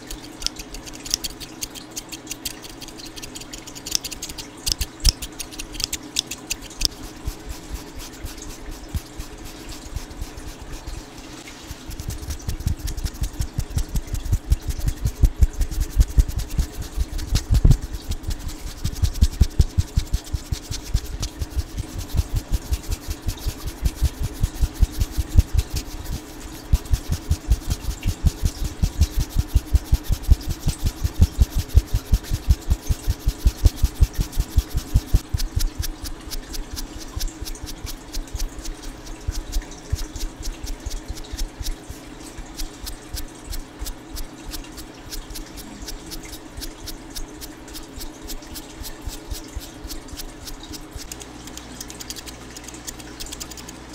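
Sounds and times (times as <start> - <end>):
bristle brush scratching microphone: 0.0 - 53.9.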